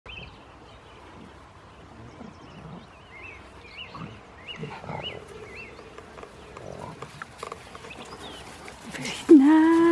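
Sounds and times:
puppies growling: 3.9 - 9.3.

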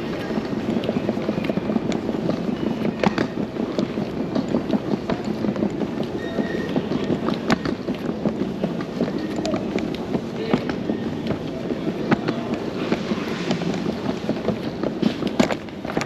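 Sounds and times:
hall background noise: 0.0 - 16.0
suitcase wheels rolling on tiles: 0.0 - 16.0.

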